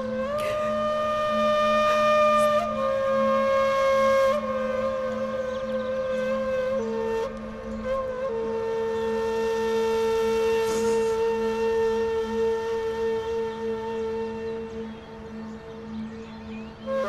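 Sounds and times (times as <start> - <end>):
flute holding long note: 0.0 - 17.0
low sustained drone: 0.0 - 17.0.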